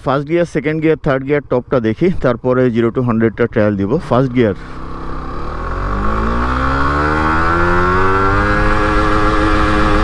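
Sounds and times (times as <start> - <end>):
motorcycle engine accelerating: 4.0 - 10.0.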